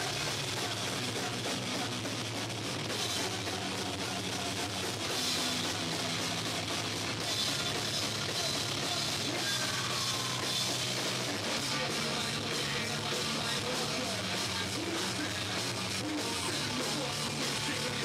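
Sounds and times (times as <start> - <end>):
punk rock band playing: 0.0 - 18.0.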